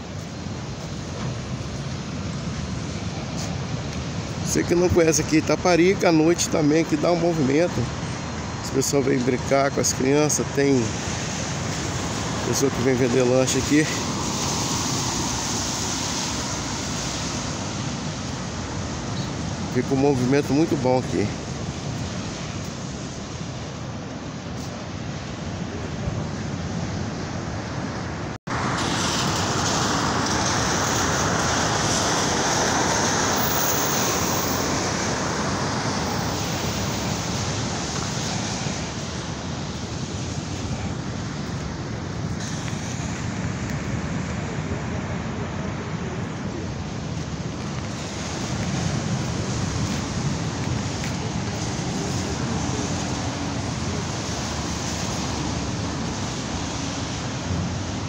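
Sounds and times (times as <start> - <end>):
road traffic: 0.0 - 58.0
surf: 0.0 - 58.0
wind rushing over microphone: 0.0 - 58.0.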